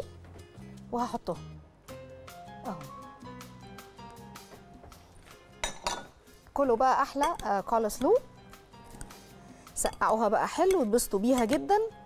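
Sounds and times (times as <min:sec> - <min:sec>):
soft background music: 0:00.0 - 0:12.0
utensil clinking glass bowl: 0:05.6 - 0:06.2, 0:07.1 - 0:08.1.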